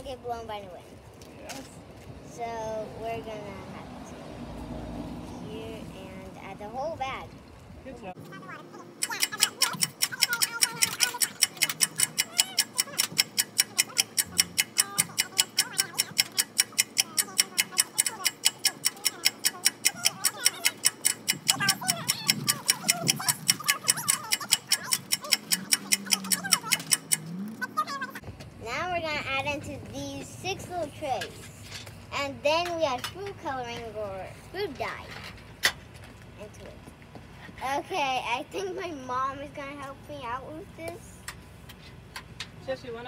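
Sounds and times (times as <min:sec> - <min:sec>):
clock-like ticking: 0:09.0 - 0:28.2.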